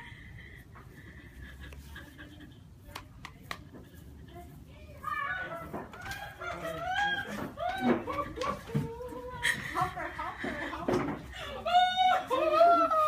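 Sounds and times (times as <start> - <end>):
people shrieking with excitement: 11.5 - 13.0.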